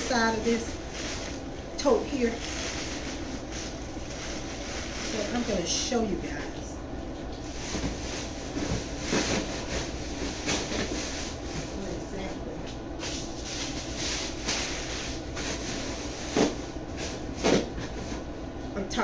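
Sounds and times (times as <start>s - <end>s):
cardboard rustling: 0.1s - 5.6s.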